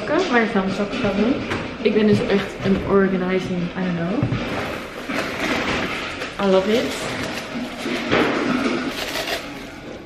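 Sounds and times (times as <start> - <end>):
packing paper rustling and crinkling: 4.5 - 10.0.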